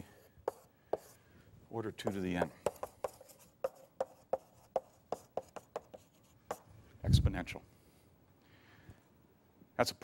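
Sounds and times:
chalk tapping on blackboard: 0.0 - 1.2, 2.0 - 6.7.

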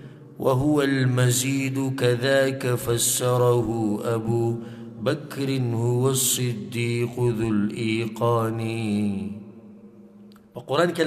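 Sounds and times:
man chanting melodic recitation: 0.4 - 9.6, 10.6 - 11.0.

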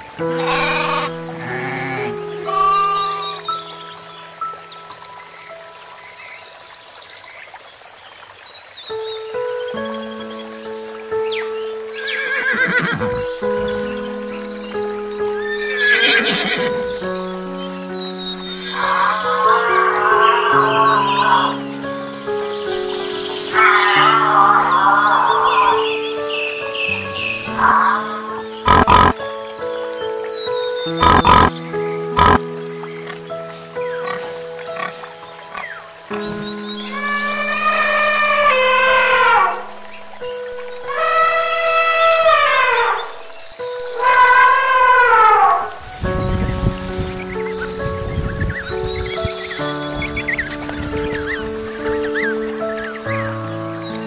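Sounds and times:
background music with held notes: 0.0 - 54.0
falling animal calls: 0.1 - 3.8, 12.0 - 14.1, 15.4 - 16.9, 18.3 - 21.8, 22.8 - 26.1, 26.7 - 29.2, 30.9 - 32.4, 34.0 - 45.8
horse whinnies: 0.4 - 3.4, 12.0 - 13.2, 15.6 - 16.7, 36.8 - 39.7.

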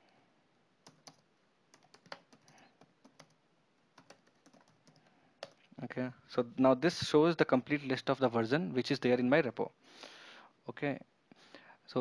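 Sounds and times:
keyboard typing: 0.8 - 5.6.

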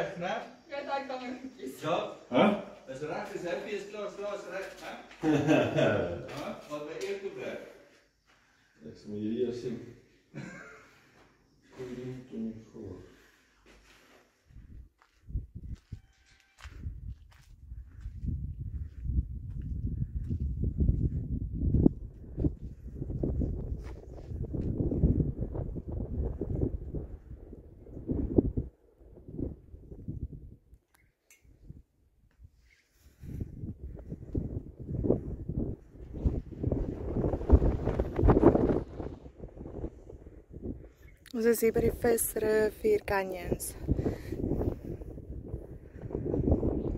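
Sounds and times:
wind buffeting microphone: 14.5 - 16.0, 16.6 - 30.7, 32.5 - 46.9.

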